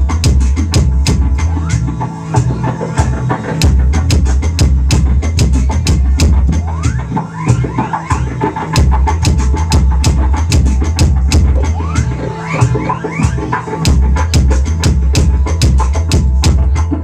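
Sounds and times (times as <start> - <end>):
deep bass line from steel pipe: 0.0 - 17.0.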